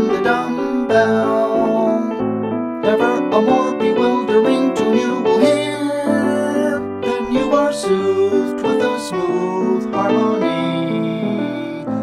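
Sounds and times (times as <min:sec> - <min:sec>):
piano playing dance song: 0:00.0 - 0:12.0.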